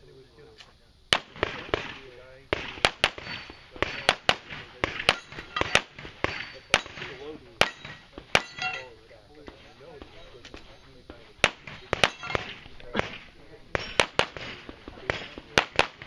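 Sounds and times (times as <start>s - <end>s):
pistol shots: 1.1s - 8.9s, 11.4s - 16.0s.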